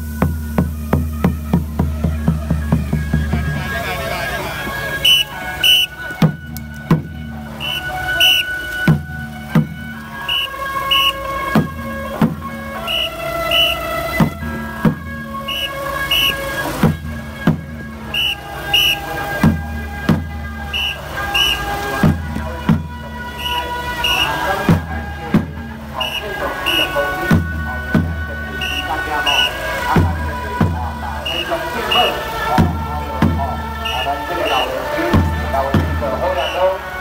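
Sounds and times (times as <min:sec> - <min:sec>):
low drum beats: 0:00.0 - 0:37.0
stepwise melody line: 0:00.0 - 0:37.0.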